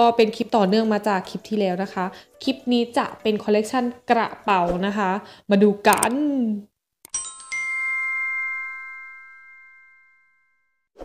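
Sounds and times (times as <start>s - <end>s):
notification bell chime: 7.1s - 10.5s.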